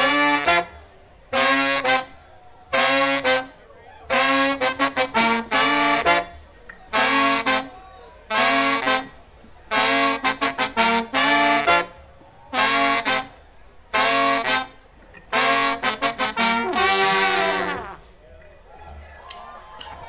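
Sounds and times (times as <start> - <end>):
horn section playing: 0.0 - 18.2.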